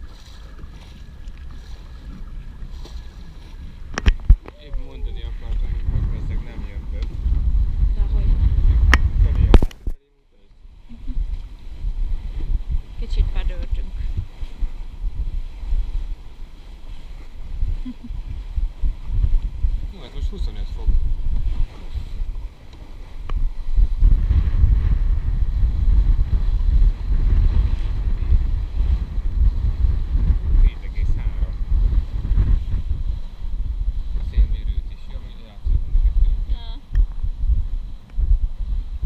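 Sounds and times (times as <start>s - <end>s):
wind buffeting microphone: 0.0s - 10.0s, 10.6s - 39.0s
water rushing along hull: 0.0s - 39.0s.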